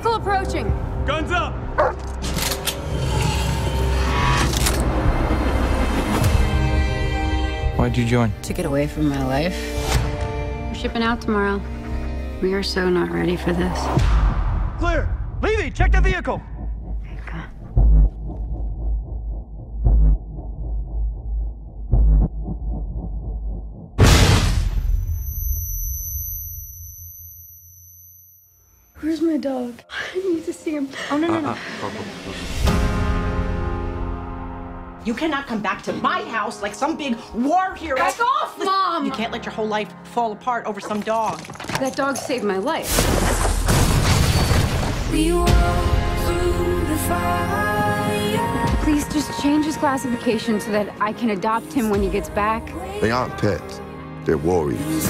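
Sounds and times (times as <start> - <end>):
tense trailer music: 0.0 - 55.0
low rumble: 12.4 - 25.0
high-pitched ringing: 24.9 - 29.3.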